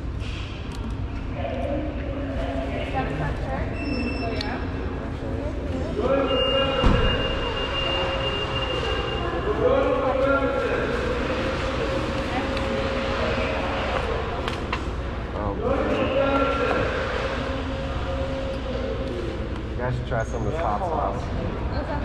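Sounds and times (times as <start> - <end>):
indistinct background voices: 1.1 - 22.0.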